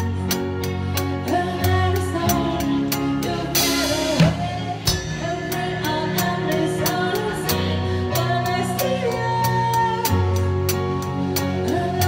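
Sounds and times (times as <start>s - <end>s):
live band playing pop song: 0.0s - 12.0s.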